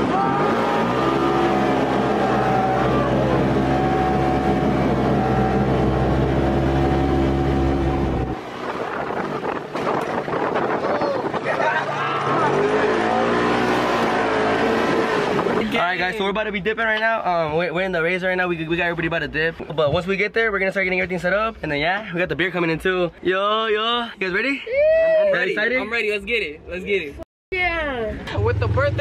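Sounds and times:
off-road vehicle engine running: 0:00.0 - 0:17.5, 0:27.6 - 0:29.0.

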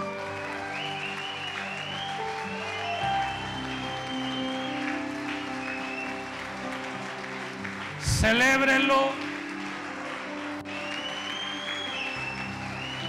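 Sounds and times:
congregation clapping: 0:00.0 - 0:13.0.

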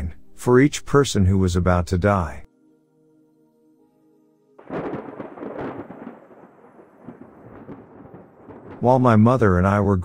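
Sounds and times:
soft background music: 0:00.0 - 0:08.2
thunderclap rolling: 0:04.6 - 0:10.0.

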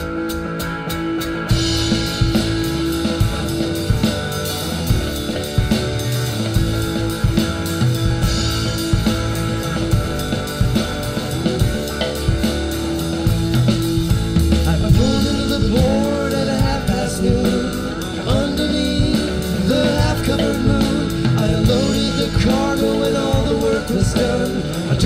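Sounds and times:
rock band playing instrumental: 0:00.0 - 0:25.0.

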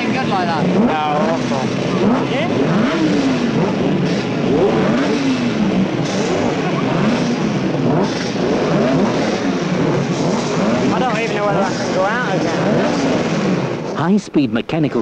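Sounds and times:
motorcycle engines revving: 0:00.0 - 0:14.1.

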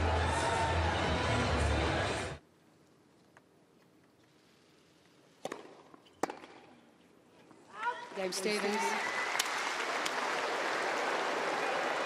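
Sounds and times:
tennis balls struck by rackets: 0:05.4 - 0:06.8.

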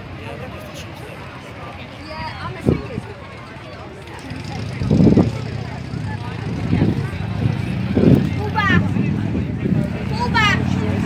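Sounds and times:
motor vehicle humming: 0:03.3 - 0:11.0.

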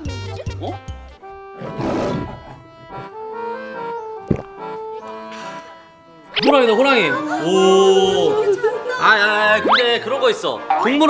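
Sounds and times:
background music: 0:00.0 - 0:11.0
lion roaring: 0:01.6 - 0:02.6.

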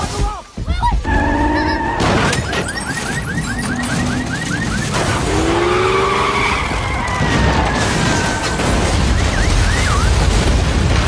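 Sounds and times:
tyres skidding: 0:01.1 - 0:10.4.

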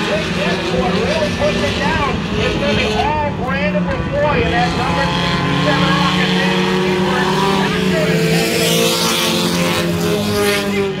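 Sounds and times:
race car engines: 0:00.0 - 0:11.0.

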